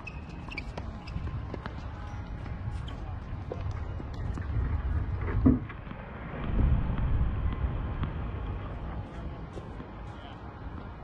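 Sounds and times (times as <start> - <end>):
steady low rumble: 2.2 - 11.0.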